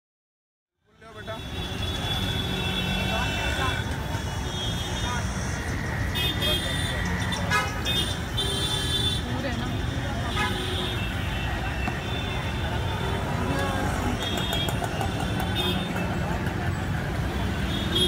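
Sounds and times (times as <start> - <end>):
street traffic: 0.7 - 18.0.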